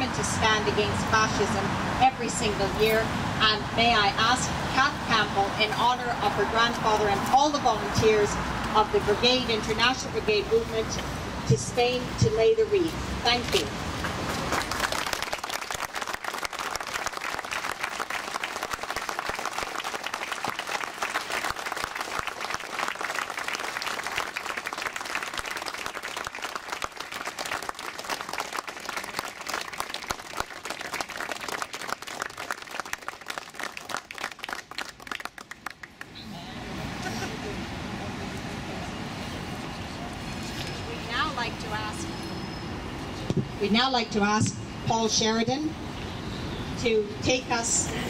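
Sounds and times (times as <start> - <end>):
crowd applauding: 14.4 - 36.2.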